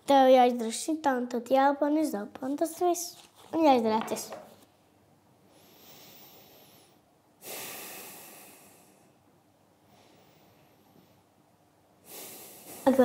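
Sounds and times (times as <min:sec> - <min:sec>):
slow deep breathing: 0:05.5 - 0:11.4, 0:12.0 - 0:12.9.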